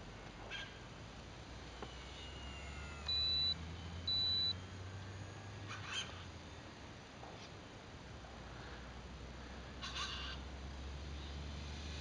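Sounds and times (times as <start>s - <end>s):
model plane motor whine: 1.6s - 6.3s
high-pitched electronic beeps: 2.8s - 5.6s.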